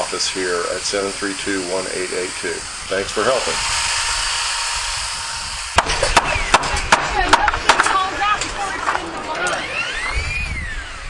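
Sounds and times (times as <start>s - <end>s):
sharp knock: 5.8s - 7.9s.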